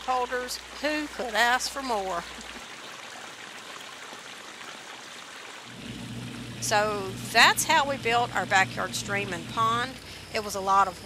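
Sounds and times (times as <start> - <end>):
water flowing over rocks: 0.0 - 10.3.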